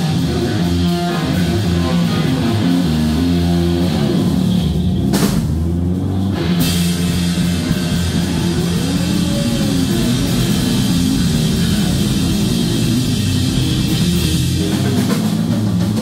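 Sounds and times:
live rock band playing: 0:00.0 - 0:16.0.

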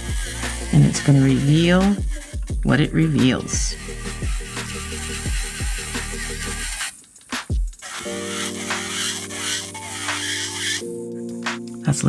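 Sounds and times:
electronic music with kick drum: 0:00.0 - 0:06.3, 0:07.1 - 0:07.8
drum hits: 0:07.3 - 0:07.8.

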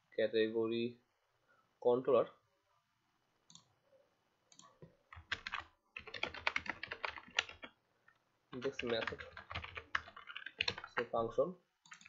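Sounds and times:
typing on computer keyboard: 0:04.5 - 0:07.8, 0:08.6 - 0:11.1.

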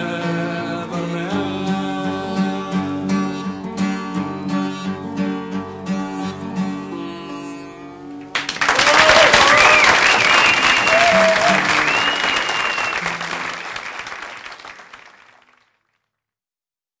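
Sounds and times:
audience applauding: 0:08.3 - 0:15.8.

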